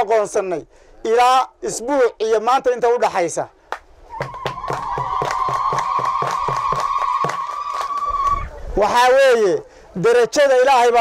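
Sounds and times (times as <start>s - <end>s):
group hand clapping: 3.7s - 8.4s.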